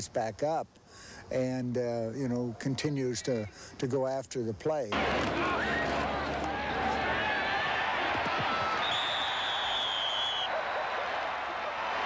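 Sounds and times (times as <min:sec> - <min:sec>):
stadium crowd noise: 0:04.9 - 0:12.0
referee's whistle blast: 0:08.6 - 0:10.5.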